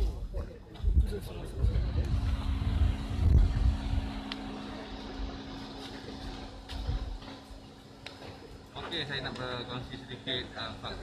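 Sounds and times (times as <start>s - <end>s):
steady engine hum: 0.0s - 11.0s
low rumble: 0.8s - 5.4s.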